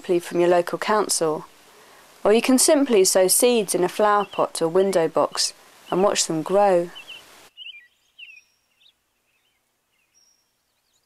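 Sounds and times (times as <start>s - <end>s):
low steady hiss: 0.0s - 11.0s
faint short bird chirps: 7.0s - 11.0s.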